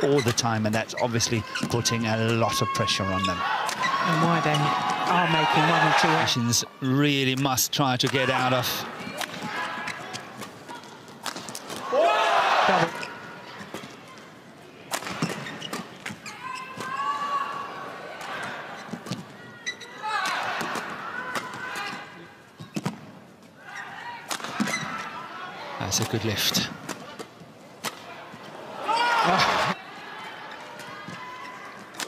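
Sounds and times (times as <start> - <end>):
shoes squeaking on court: 0.0 - 4.9, 8.9 - 11.8, 12.8 - 14.4, 15.0 - 17.2, 18.4 - 20.0, 21.8 - 25.2
rackets hitting shuttlecock: 8.0 - 11.9.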